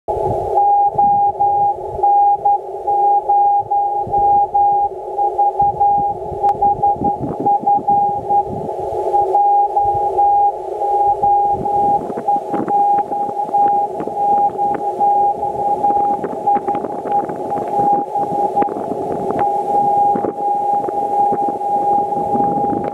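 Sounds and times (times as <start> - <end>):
radio receiver hiss and crackle: 0.1 - 22.9
morse code beeps: 0.6 - 8.5, 9.1 - 22.9.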